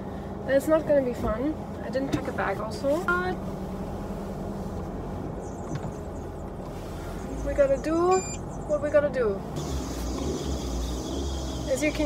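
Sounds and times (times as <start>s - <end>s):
car engine and road rumble: 0.0s - 12.0s
constant hum: 0.0s - 12.0s.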